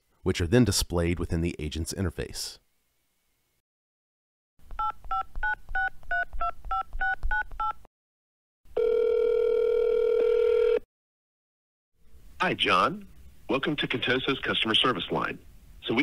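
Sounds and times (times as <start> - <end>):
phone ringback tone: 8.8 - 10.8.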